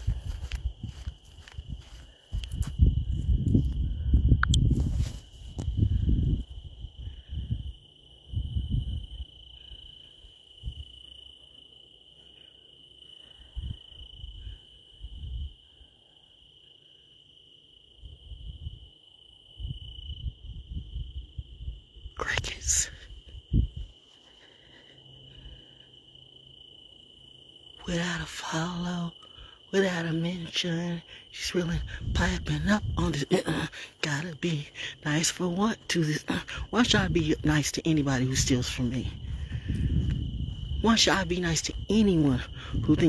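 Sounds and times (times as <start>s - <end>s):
insects trilling: 0.0s - 43.0s.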